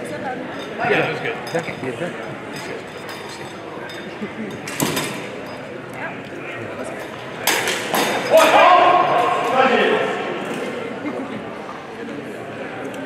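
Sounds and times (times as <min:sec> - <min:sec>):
loud drawn-out shout: 0:08.3 - 0:10.4.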